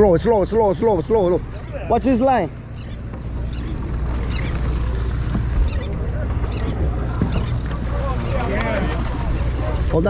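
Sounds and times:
boat engine rumbling: 0:00.0 - 0:10.0
sea water washing: 0:00.0 - 0:10.0.

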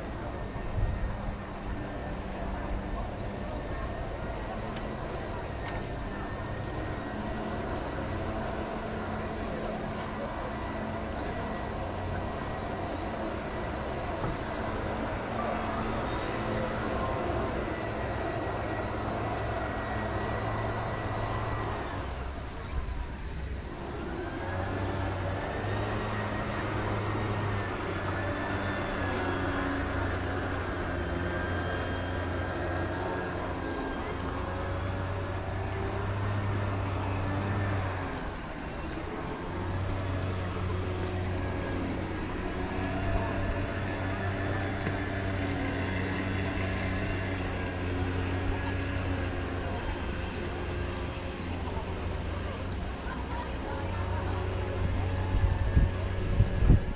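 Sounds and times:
motor humming: 0:00.0 - 0:56.9.

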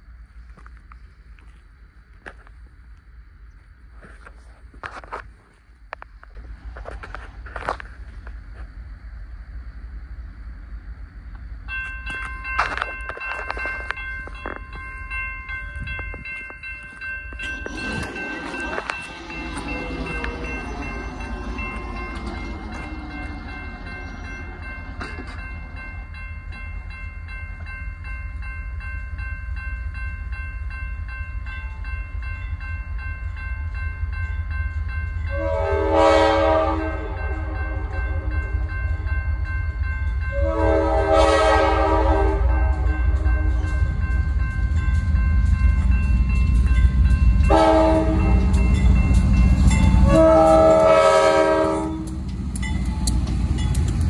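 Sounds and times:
crossing bell ringing: 0:11.6 - 0:54.0
locomotive air horn blasts: 0:35.3 - 0:38.6, 0:40.3 - 0:43.5, 0:47.5 - 0:48.6, 0:50.0 - 0:52.2.

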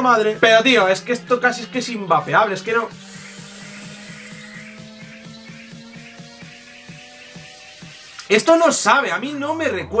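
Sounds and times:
background music with steady beat: 0:00.0 - 0:10.0
e-cigarette coil hissing: 0:03.0 - 0:04.8, 0:07.4 - 0:08.3.

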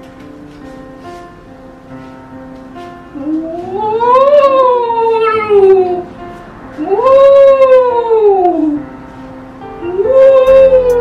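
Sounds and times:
quiet background music: 0:00.0 - 0:11.0
howl-like cry: 0:03.8 - 0:06.1, 0:06.8 - 0:08.8.

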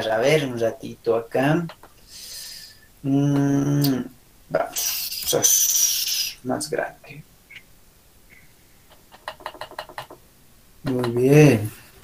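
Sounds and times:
person speaking: 0:00.0 - 0:07.7, 0:10.8 - 0:12.0.

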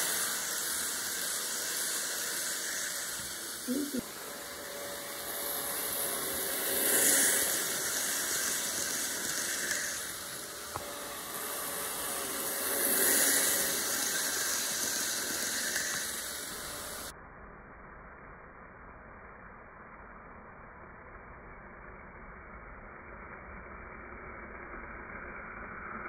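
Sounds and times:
model train wheels hissing: 0:00.0 - 0:17.1.

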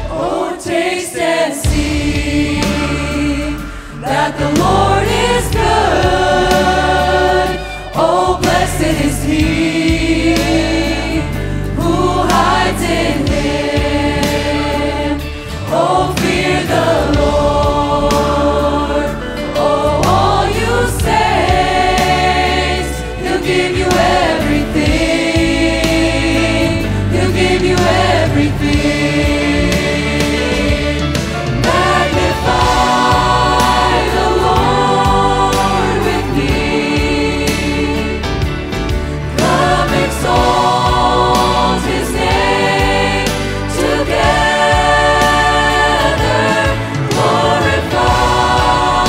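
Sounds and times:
choir singing: 0:00.0 - 0:49.0
instrumental accompaniment: 0:00.0 - 0:49.0.

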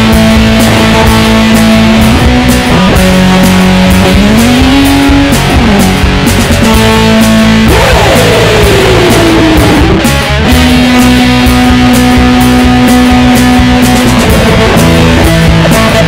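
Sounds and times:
bass guitar: 0:00.0 - 0:16.0
drums keeping time: 0:00.0 - 0:16.0
electric guitar solo: 0:00.0 - 0:16.0.

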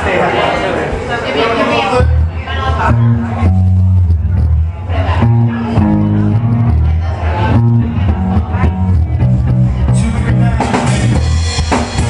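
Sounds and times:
guitar: 0:01.7 - 0:12.0
bass guitar: 0:02.0 - 0:12.0.

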